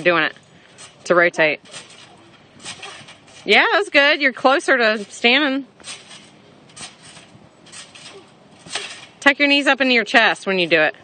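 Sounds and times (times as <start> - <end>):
faint trampoline bouncing: 0.0 - 11.0.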